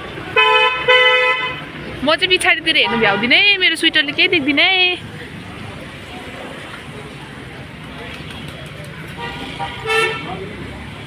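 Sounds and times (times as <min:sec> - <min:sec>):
vehicle horn honking: 0:00.4 - 0:01.7, 0:09.2 - 0:10.4.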